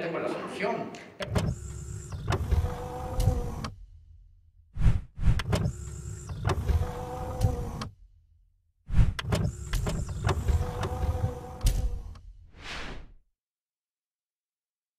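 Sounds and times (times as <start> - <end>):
low mechanical rumble: 9.5 - 12.2.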